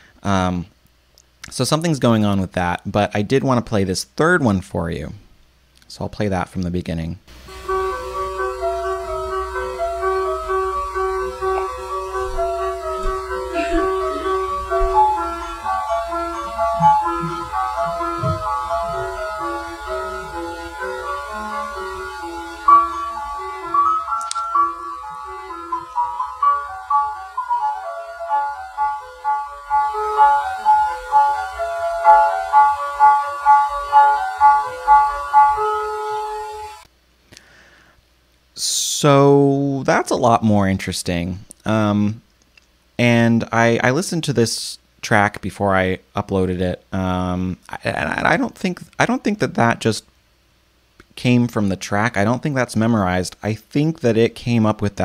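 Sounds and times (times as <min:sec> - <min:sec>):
synthesized piano piece: 0:07.3 - 0:36.9.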